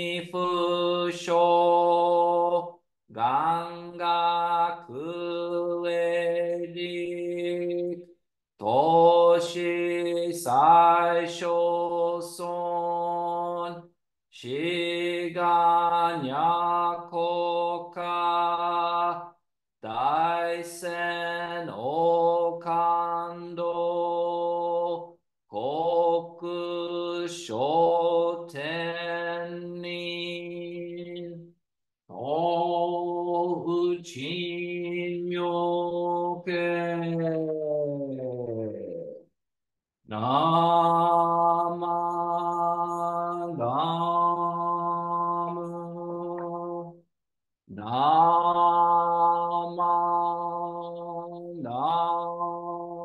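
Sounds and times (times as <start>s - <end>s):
man chanting: 0.0s - 19.2s, 19.8s - 31.4s, 32.1s - 39.3s, 40.1s - 47.0s.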